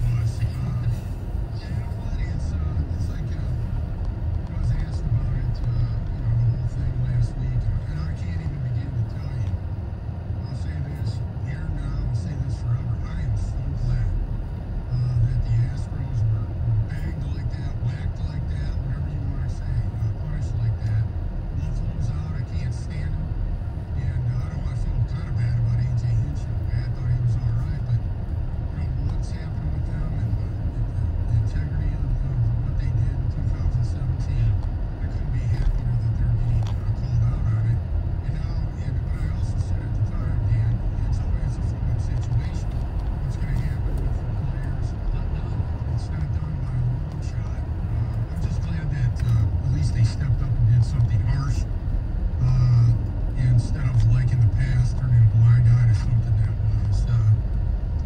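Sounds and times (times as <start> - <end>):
road and engine rumble in car: 0.0 - 58.0.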